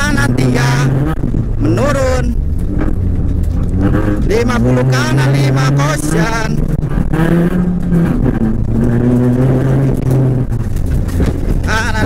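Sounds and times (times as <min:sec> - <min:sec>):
car engine revving hard: 0:00.0 - 0:12.0.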